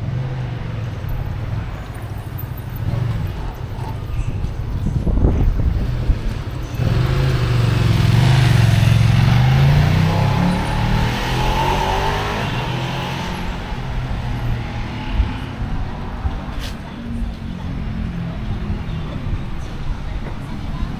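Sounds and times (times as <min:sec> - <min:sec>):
street traffic noise: 0:00.0 - 0:20.9
vehicle engine passing: 0:05.3 - 0:17.2.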